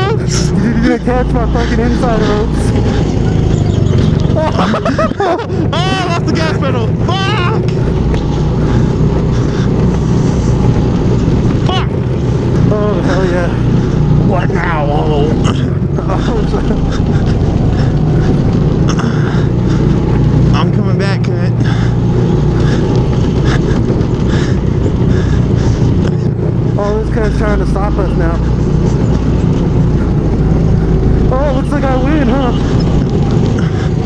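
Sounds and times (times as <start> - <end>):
go-kart engine running: 0.0 - 34.0
voices and laughter: 0.0 - 34.0.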